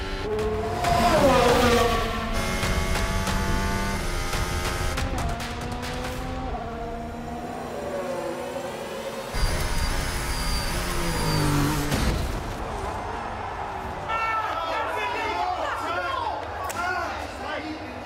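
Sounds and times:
dramatic music score: 0.0s - 7.4s
racing car engines: 0.0s - 14.0s.

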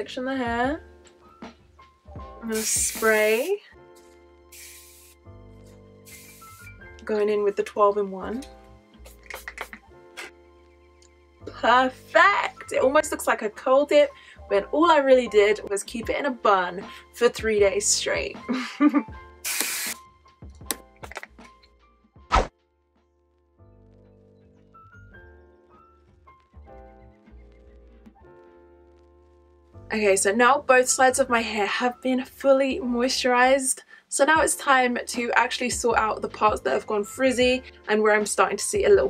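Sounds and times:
soft background music: 0.0s - 39.0s
spray bottle hiss: 2.5s - 3.6s, 4.5s - 5.3s, 6.0s - 6.8s, 9.0s - 10.3s, 19.4s - 20.0s.

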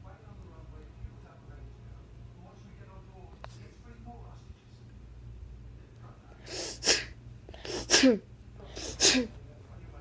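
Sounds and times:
person sneezing: 6.5s - 9.3s.

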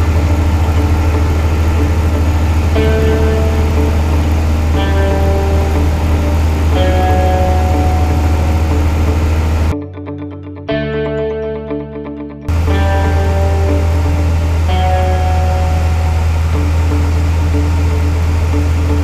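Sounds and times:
aircraft piston engine drone: 0.0s - 9.7s, 12.5s - 19.0s
slow background music: 0.0s - 19.0s.

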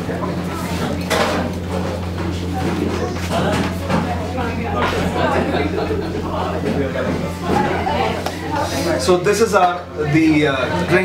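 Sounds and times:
indistinct background voices: 0.0s - 11.0s
steady low hum: 0.0s - 11.0s.

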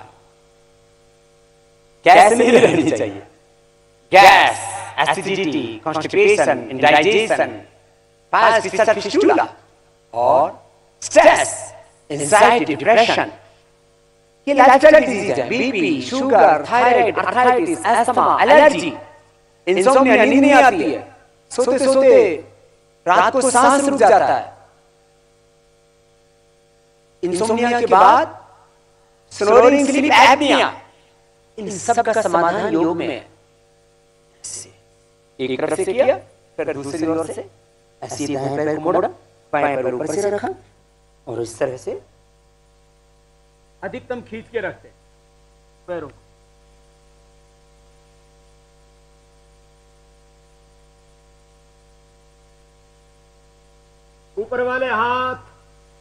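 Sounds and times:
electrical mains hum: 0.0s - 56.0s
low hiss: 0.0s - 56.0s.

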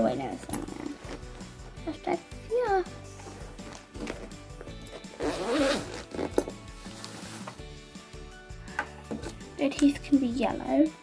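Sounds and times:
zipper rasp on pencil case: 0.5s - 1.4s, 3.2s - 7.6s.

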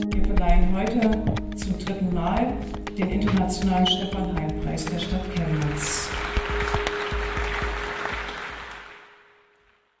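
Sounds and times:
audience applause: 5.5s - 9.3s.

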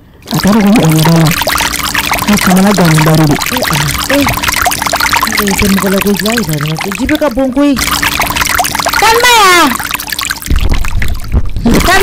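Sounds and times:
water running steadily: 0.0s - 12.0s
person talking: 0.3s - 1.6s, 2.2s - 4.5s, 5.2s - 7.9s.

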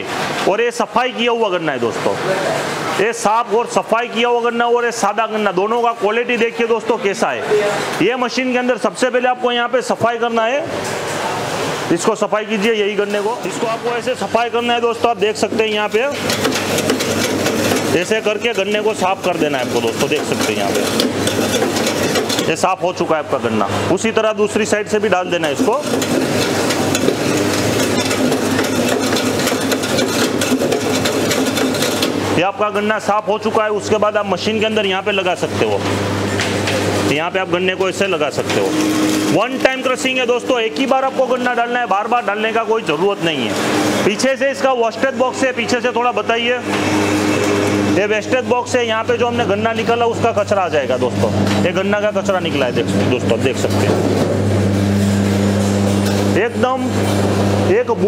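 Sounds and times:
juice machine motor hum: 0.0s - 58.0s
cleaner scraping cane skin: 16.1s - 22.6s.

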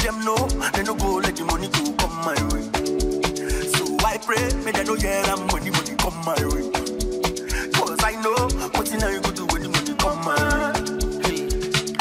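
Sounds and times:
dance music over sound system: 0.0s - 12.0s.

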